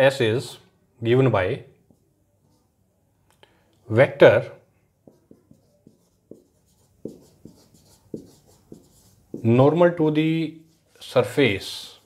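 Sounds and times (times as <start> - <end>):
marker writing on whiteboard: 4.9 - 9.8.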